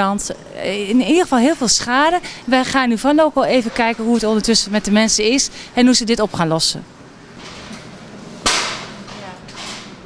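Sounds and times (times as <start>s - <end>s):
sharp bang ringing in a room: 8.4s - 9.0s.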